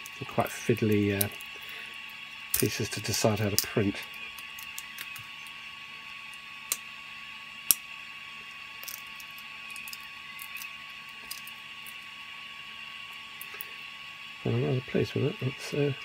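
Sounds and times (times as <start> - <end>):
faint steady whine: 0.0 - 16.0.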